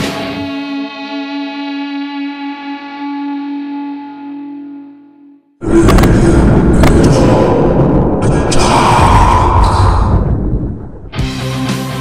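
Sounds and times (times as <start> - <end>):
distorted electric guitar note: 0.0 - 8.1.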